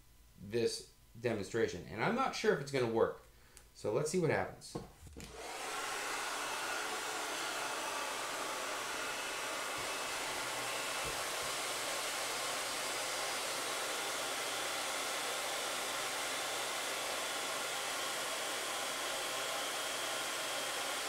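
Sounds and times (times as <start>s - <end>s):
hair dryer blowing: 5.2s - 21.0s.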